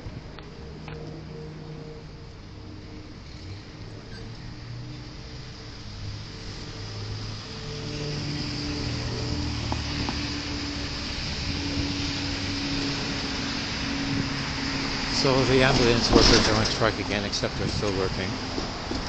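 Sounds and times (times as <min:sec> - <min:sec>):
street traffic passing: 0:00.0 - 0:19.0.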